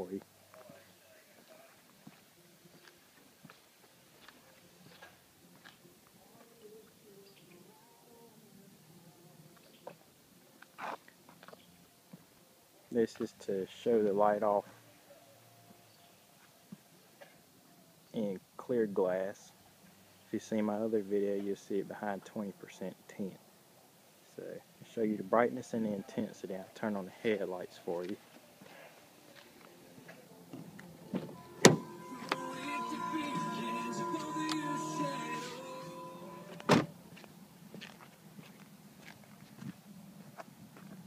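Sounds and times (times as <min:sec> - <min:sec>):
faint footsteps: 0:00.2 - 0:06.6, 0:28.0 - 0:41.0
faint electronic tone: 0:31.0 - 0:37.1
car door latch click: 0:31.2 - 0:31.8.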